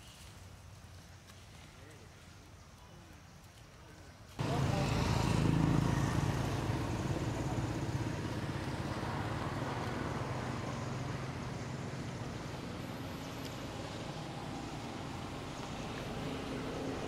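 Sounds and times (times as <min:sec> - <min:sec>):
vehicle engine running: 0:04.4 - 0:17.0.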